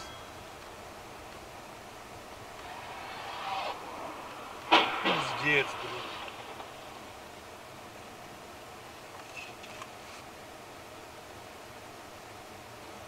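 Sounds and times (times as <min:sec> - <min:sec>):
car crash crunch: 0:02.5 - 0:07.2.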